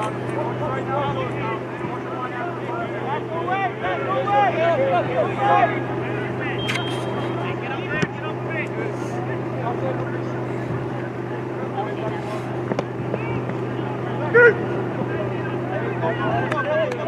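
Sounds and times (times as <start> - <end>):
low hum: 0.0 - 16.8
players shouting: 0.0 - 17.0.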